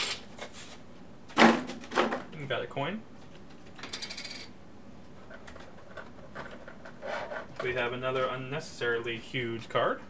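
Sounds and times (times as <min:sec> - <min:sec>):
metal coin ringing on table: 0:03.8 - 0:04.5.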